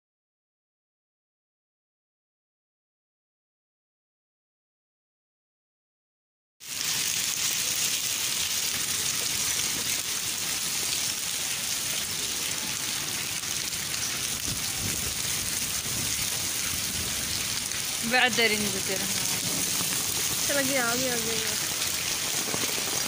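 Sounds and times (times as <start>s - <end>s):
rain and sleet on concrete: 6.6s - 23.0s.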